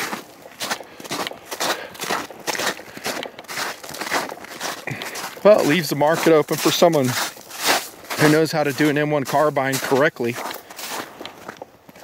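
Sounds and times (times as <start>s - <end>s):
footsteps on snow: 0.0s - 12.0s.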